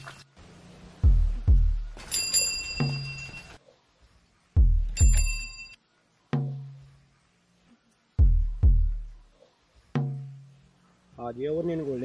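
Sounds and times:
bicycle bell ringing: 0:02.0 - 0:03.6, 0:04.9 - 0:05.8.

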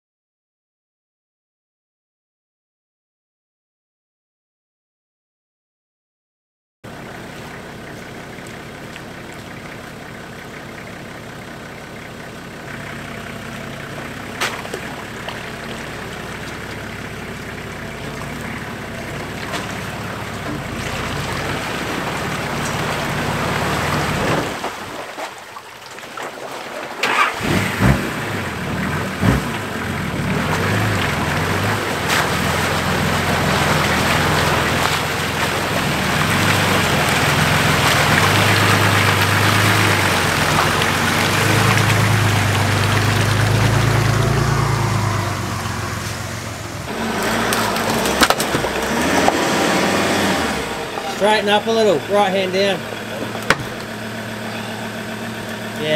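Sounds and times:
off-road engine under load: 0:06.8 - 0:55.9
sharp knocks: 0:53.2 - 0:53.9.

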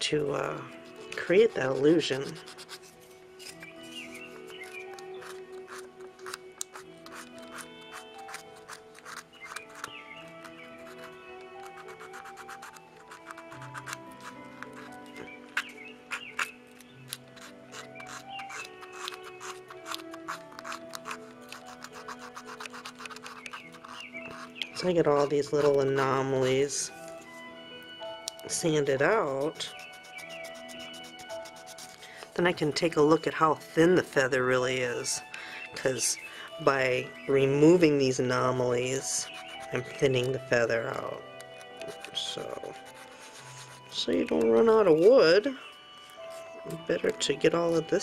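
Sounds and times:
soft background music: 0:00.0 - 0:48.0
sanding wood scratching: 0:00.6 - 0:26.5, 0:28.9 - 0:32.1, 0:39.2 - 0:40.4, 0:41.9 - 0:44.0.

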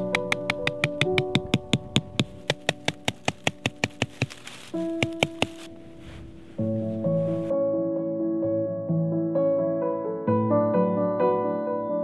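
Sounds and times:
hammer tapping tent peg: 0:00.0 - 0:04.4, 0:05.0 - 0:05.7
soft piano music: 0:00.0 - 0:12.0.

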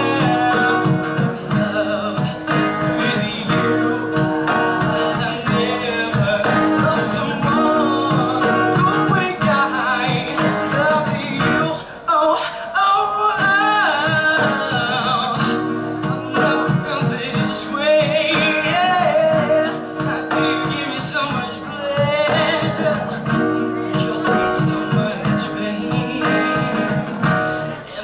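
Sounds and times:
man singing: 0:00.0 - 0:28.0
strummed acoustic guitar: 0:00.0 - 0:28.0.

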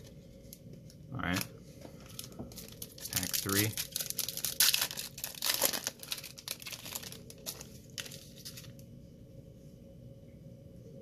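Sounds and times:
plastic wrapper tearing and crinkling: 0:00.0 - 0:01.5, 0:02.1 - 0:08.8.

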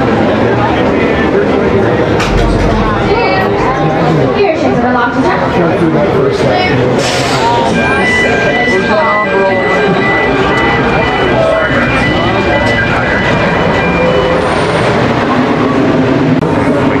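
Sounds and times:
roller coaster rumbling on track: 0:00.0 - 0:17.0.

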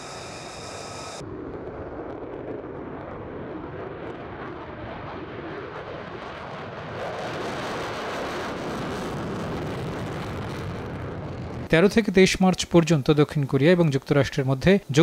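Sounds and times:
fighter jet taking off: 0:00.0 - 0:11.7.

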